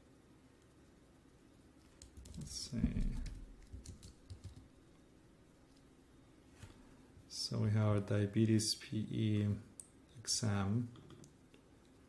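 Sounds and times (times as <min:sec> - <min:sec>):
typing on computer keyboard: 0:01.9 - 0:04.7.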